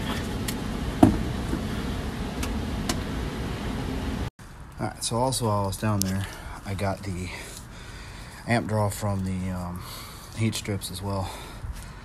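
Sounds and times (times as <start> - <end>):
blower motor running steadily: 0.0 - 4.3.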